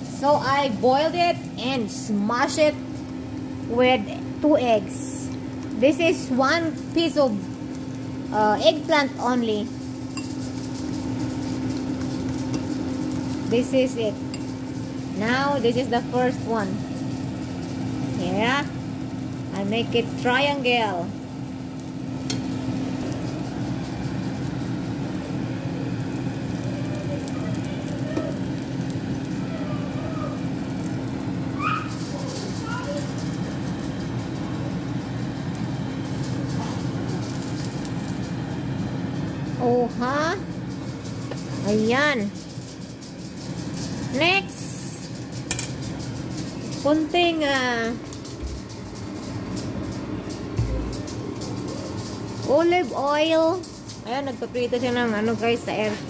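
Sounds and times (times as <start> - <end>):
food sizzling in oil: 0.0 - 56.0
steady low hum: 0.0 - 56.0.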